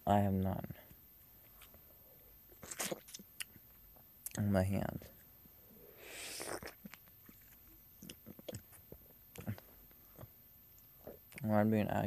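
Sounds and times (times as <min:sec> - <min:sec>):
person chewing lemon: 0:02.6 - 0:04.4, 0:06.3 - 0:10.3.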